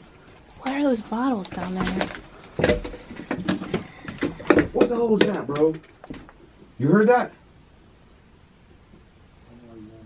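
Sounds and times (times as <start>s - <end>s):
knocks and scuffs of people moving: 0.3s - 5.4s.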